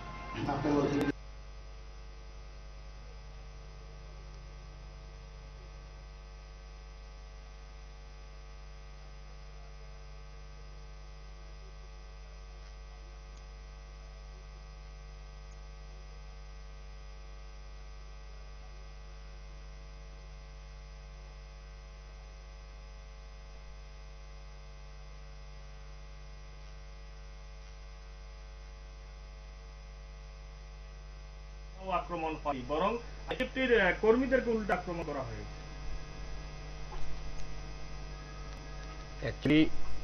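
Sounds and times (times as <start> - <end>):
electrical mains hum: 0.0 - 40.0.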